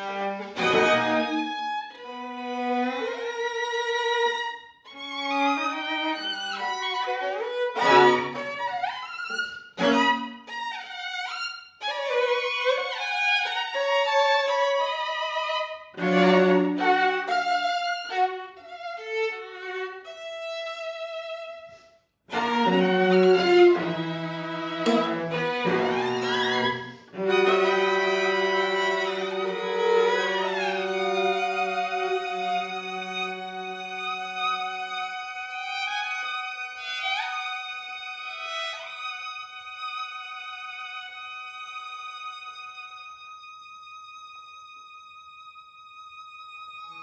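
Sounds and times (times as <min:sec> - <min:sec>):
violin holding high note: 0:00.0 - 0:02.2, 0:04.9 - 0:10.7, 0:22.3 - 0:37.4
string quartet playing: 0:00.0 - 0:21.5, 0:22.3 - 0:43.6
high violin note: 0:00.0 - 0:47.0.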